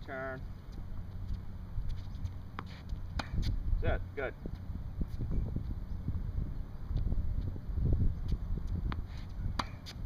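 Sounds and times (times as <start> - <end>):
wind rumbling on microphone: 0.4 - 10.0
racket hitting tennis ball: 1.9 - 3.6, 8.6 - 10.0.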